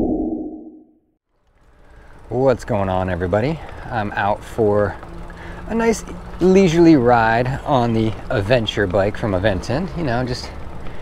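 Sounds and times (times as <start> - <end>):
wind and road noise: 1.3 - 11.0.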